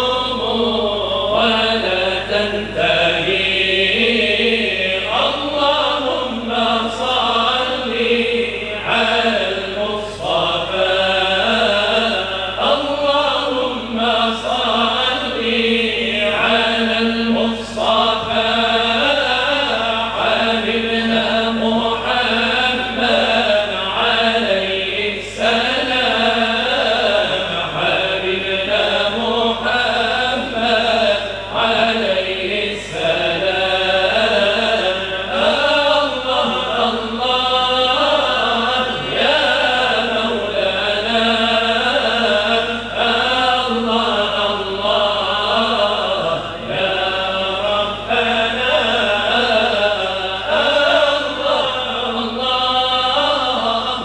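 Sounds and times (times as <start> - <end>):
men chanting in unison: 0.0 - 54.0.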